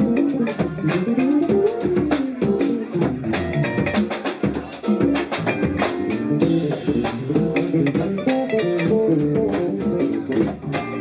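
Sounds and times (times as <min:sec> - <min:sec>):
drum kit with cymbal hits: 0:00.0 - 0:11.0
electric bass melodic line: 0:00.0 - 0:11.0.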